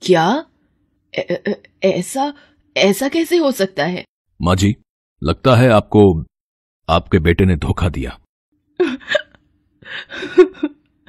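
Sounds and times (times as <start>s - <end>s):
elderly woman sobbing: 8.8s - 11.0s.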